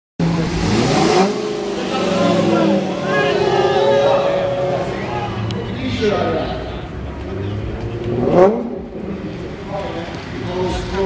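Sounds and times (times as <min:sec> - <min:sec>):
car engine revving: 0:00.2 - 0:11.0
crowd voices and shouts: 0:00.2 - 0:11.0.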